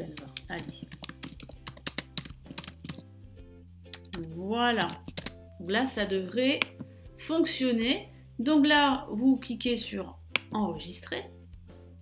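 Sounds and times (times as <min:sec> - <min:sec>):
typing on computer keyboard: 0:00.2 - 0:03.0, 0:04.0 - 0:05.4.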